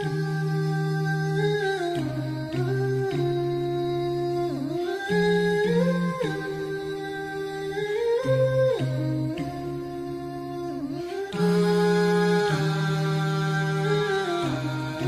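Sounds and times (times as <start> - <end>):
person humming slow melody: 0.0 - 15.0.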